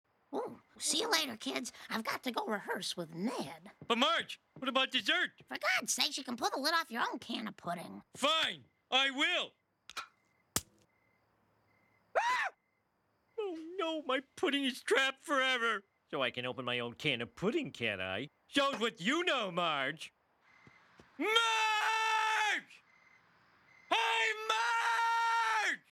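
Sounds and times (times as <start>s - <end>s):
metallic can tab snapping: 9.9s - 10.8s
man's cartoon voice yelling: 21.2s - 22.7s, 23.9s - 25.9s.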